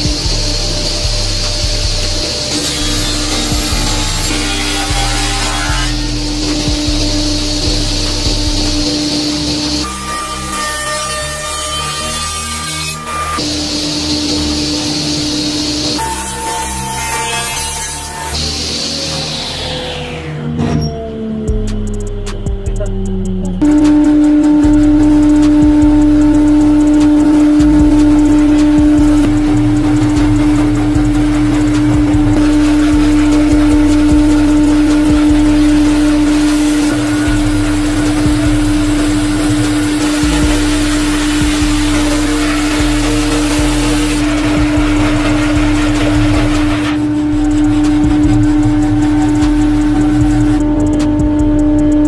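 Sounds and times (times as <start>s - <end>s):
saw blade cutting wood: 0.0s - 21.0s, 23.6s - 52.0s
bandsaw motor hum: 0.0s - 52.0s.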